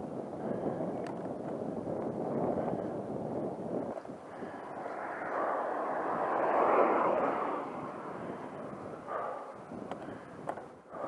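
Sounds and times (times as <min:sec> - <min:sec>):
car passing close by: 0:04.3 - 0:09.7.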